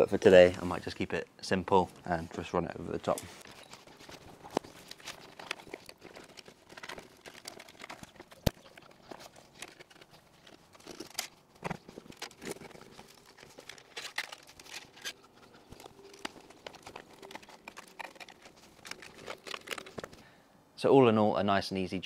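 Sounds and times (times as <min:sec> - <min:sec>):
plastic conduit rustling: 0:02.3 - 0:20.3.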